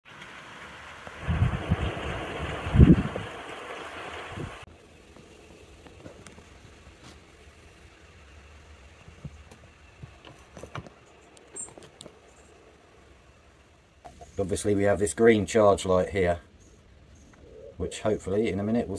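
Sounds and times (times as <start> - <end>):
wind buffeting microphone: 1.2 - 4.7.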